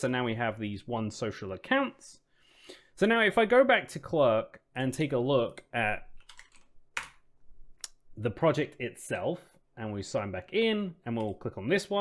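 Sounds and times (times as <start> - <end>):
keyboard keys typing: 6.2 - 7.2.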